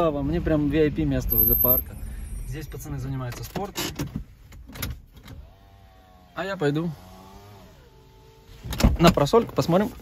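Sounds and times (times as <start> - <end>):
power window motor whine: 5.2 - 6.3.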